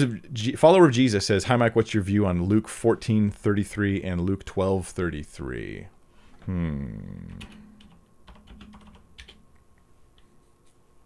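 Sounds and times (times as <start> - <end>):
keyboard typing: 7.3 - 9.4.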